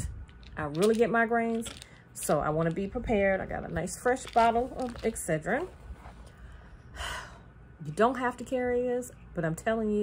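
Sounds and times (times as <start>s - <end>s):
woman speaking: 0.0s - 5.8s, 7.8s - 10.0s
woman sighing: 6.9s - 7.5s.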